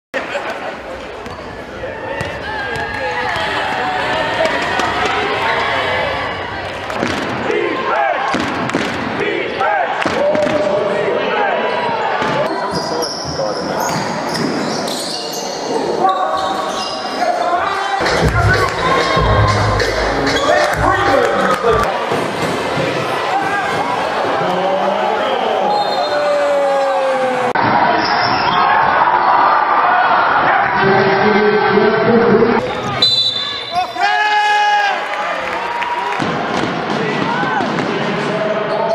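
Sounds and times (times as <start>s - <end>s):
voices of players and spectators: 0.1s - 38.9s
basketball bouncing on court: 2.2s - 3.7s.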